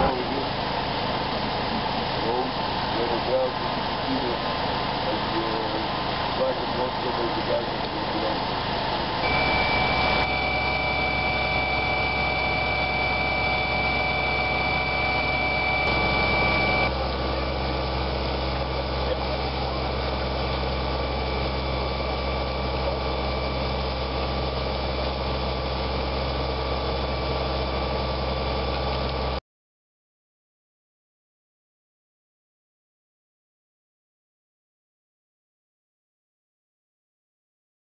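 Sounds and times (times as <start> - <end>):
fire engine and water pump running: 0.0 - 29.4.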